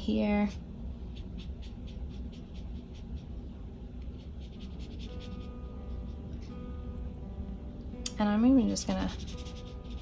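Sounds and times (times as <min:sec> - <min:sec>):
brush pen scratching on paper: 0:01.0 - 0:06.6, 0:08.9 - 0:10.0.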